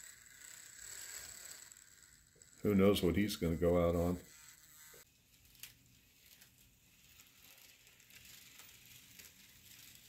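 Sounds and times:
model train motor whining: 0.0 - 10.0.

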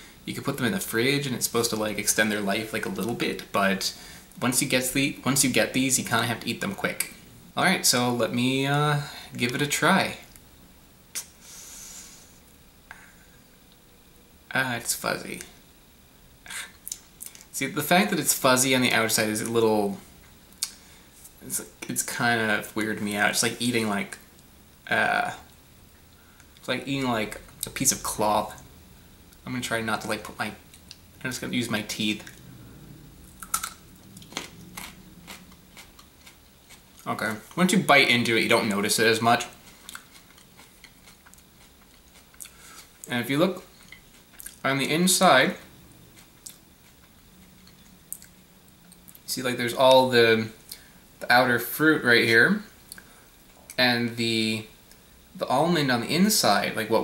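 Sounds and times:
faint low hum: 0.0 - 57.0
lip clicks: 11.1 - 11.4, 16.6 - 17.5, 20.5 - 20.8, 52.9 - 53.7
breath in: 11.4 - 13.3
crisp chewing crunches: 33.4 - 37.6, 39.4 - 44.6.

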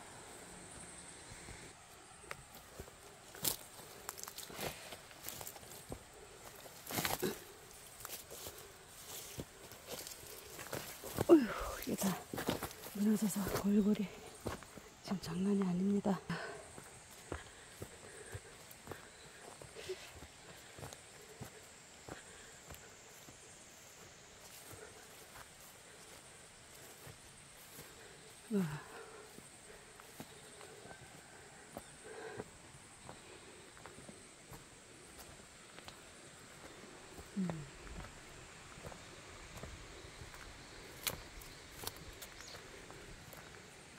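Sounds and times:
rustling of grass: 1.1 - 15.1, 16.7 - 43.9
footsteps on dirt path: 1.5 - 43.9.

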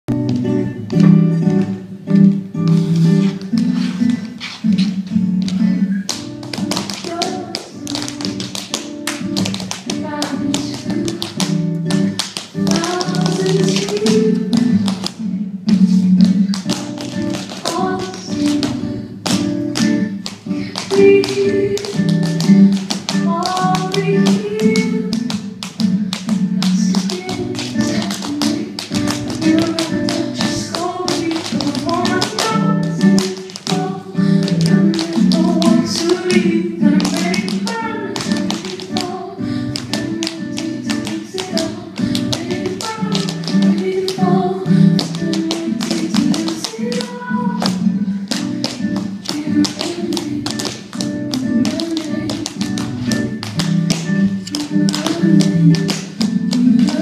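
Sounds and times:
accompanying music: 0.1 - 57.0
tap shoes striking stage floor: 0.1 - 57.0.

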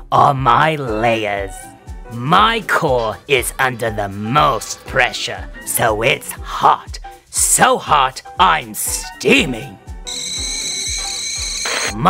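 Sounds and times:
voice: 0.1 - 9.8
background music with low beat: 0.4 - 12.0.

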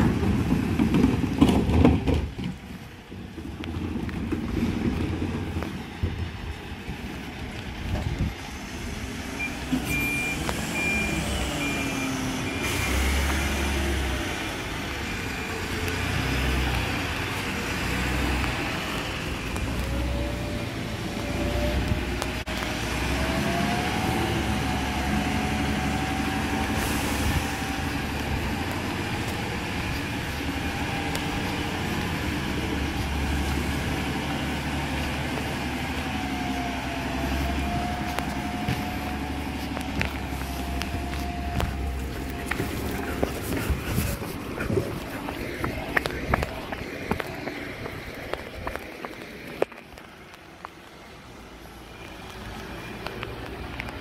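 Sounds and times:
truck whine: 0.0 - 54.0
truck engine running: 2.6 - 49.6
reversing alarm beeping: 9.4 - 13.3.

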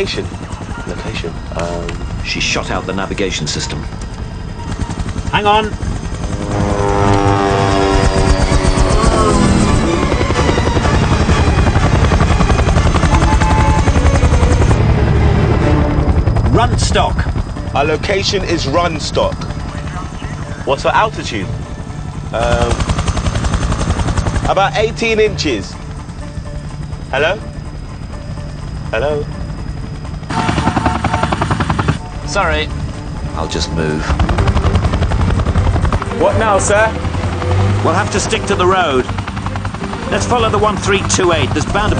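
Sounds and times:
helicopter engine drone: 0.0 - 41.9
helicopter rotor chopping: 0.0 - 41.9.

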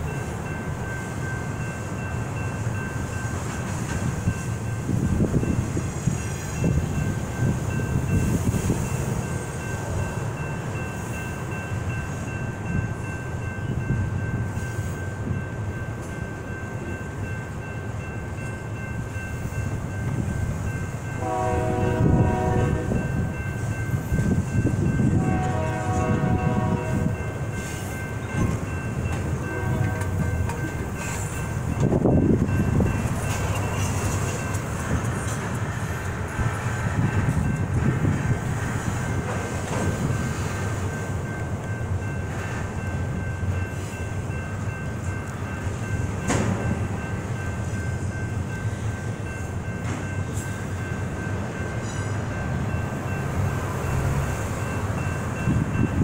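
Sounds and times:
crossing bells ringing: 0.0 - 56.0
freight train rumbling and clanking: 0.0 - 56.0
train horn blasts: 21.2 - 23.3, 25.0 - 27.2, 29.4 - 30.6.

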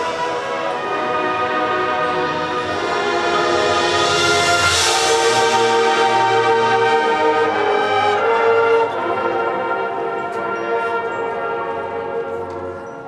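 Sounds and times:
marching band brass chords: 0.0 - 13.0.

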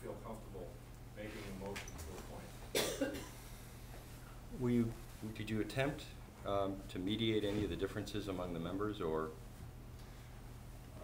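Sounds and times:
person coughing: 2.7 - 3.4.

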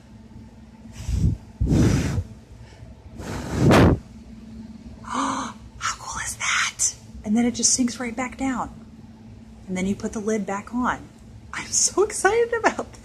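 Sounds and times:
breath puffs hitting microphone: 0.9 - 4.2.

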